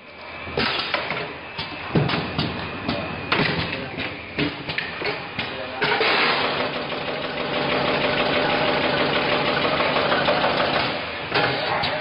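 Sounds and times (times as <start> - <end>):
packing machine running: 5.6 - 12.0.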